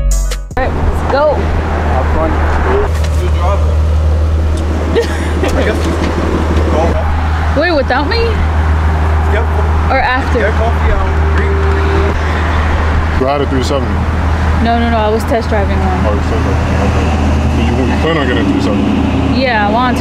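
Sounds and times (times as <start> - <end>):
car engine idling: 0.6 - 20.0.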